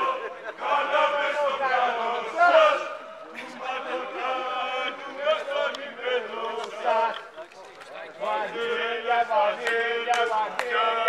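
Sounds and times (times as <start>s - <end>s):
men chanting and shouting: 0.0s - 11.0s.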